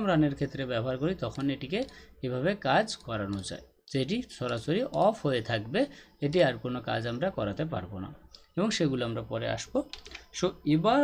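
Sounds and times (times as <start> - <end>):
person talking: 0.0 - 11.0
computer keyboard clicks: 9.8 - 10.3.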